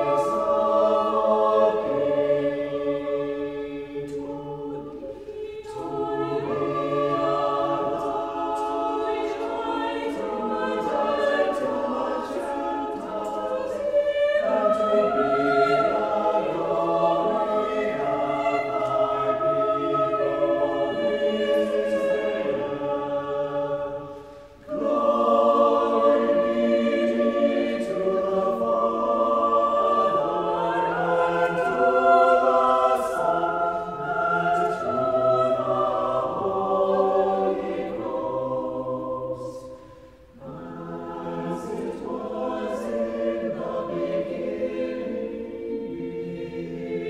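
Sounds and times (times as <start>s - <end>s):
church choir singing: 0.0s - 47.0s.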